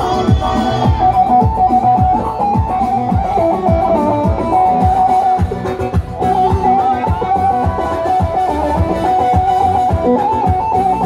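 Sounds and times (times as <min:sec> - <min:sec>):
deep drum beat: 0:00.0 - 0:10.0.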